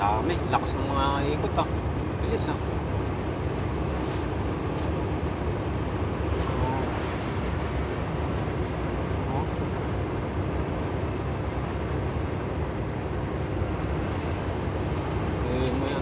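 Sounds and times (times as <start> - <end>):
vehicle engine rumble: 0.0 - 16.0.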